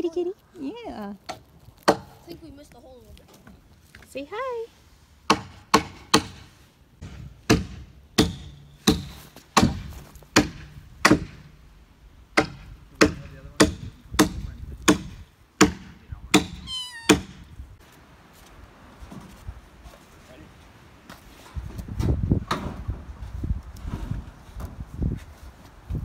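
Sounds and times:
hand hammer blows: 16.4 - 17.4
kitten meowing: 16.6 - 17.4.

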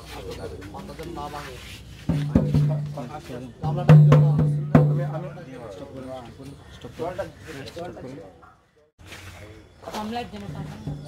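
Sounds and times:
heavy drum strokes: 1.8 - 5.5.

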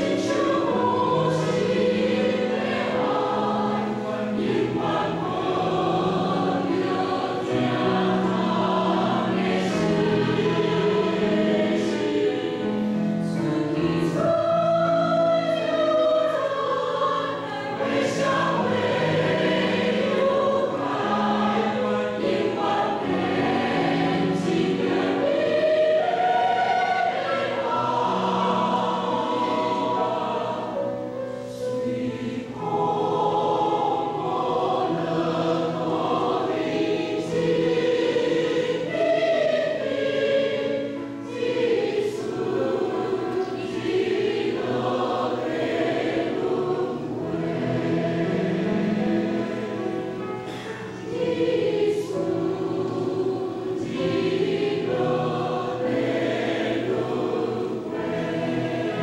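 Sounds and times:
mixed choir singing in parts: 0.0 - 59.0.

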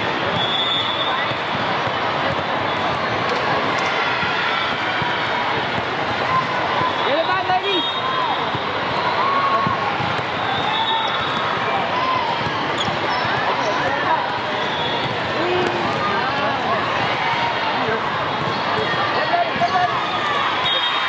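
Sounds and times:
din of many voices: 0.0 - 21.0
balls struck and bouncing: 0.1 - 7.7, 8.4 - 20.1.

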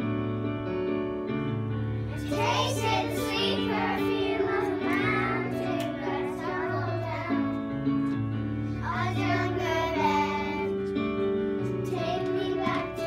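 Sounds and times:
backing music: 1.5 - 13.0
children singing a pop song: 2.2 - 7.6, 8.8 - 10.8, 11.8 - 13.0.

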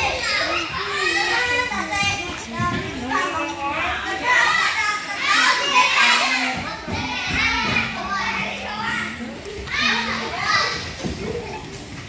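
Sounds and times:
children playing and calling out: 0.0 - 12.0.

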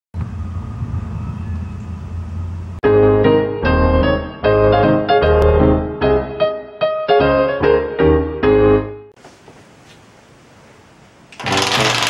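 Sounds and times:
dominoes clattering on wooden floor: 11.4 - 12.0.

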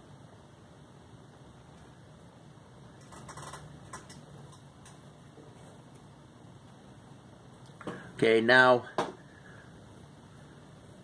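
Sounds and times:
clicks and rustles of handling: 3.0 - 6.1.

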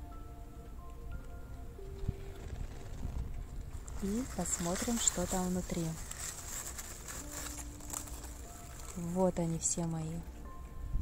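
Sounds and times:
paper packing filler rustling: 3.7 - 9.3.

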